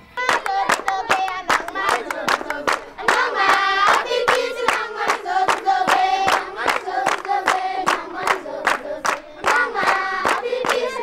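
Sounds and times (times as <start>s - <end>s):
rhythmic hand clapping: 0.2s - 11.0s
children singing: 0.4s - 11.0s.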